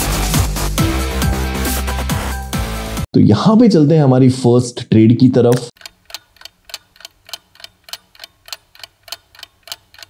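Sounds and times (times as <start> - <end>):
clock ticking: 5.5 - 10.0.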